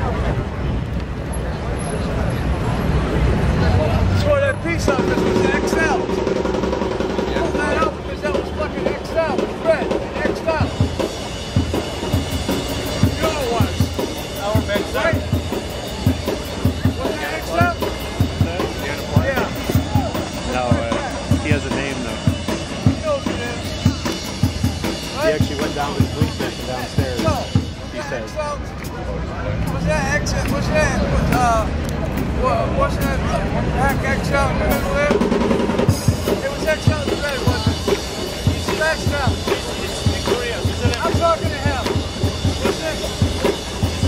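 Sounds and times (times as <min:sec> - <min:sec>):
music with drum beat: 0:04.8 - 0:29.0, 0:29.6 - 0:44.0.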